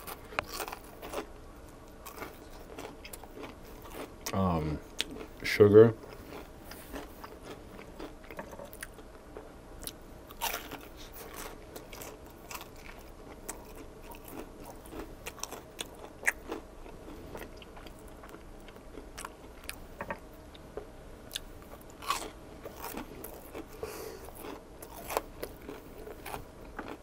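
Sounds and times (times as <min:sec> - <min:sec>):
crunchy food chewing: 0:00.0 - 0:09.1, 0:09.8 - 0:20.6, 0:21.3 - 0:27.0.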